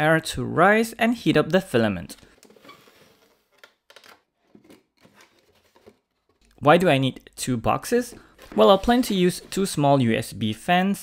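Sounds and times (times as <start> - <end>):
packing tape rustling: 2.4 - 6.5, 8.1 - 9.7.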